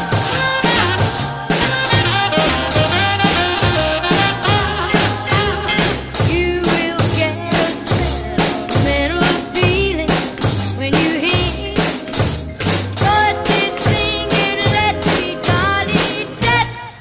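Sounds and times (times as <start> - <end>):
backing track melody: 0.0 - 17.0
drum kit beat: 0.0 - 17.0.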